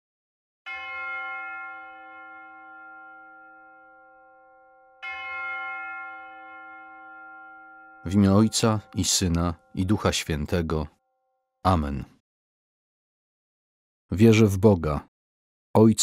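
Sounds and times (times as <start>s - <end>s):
bell ringing: 0.7s - 10.6s.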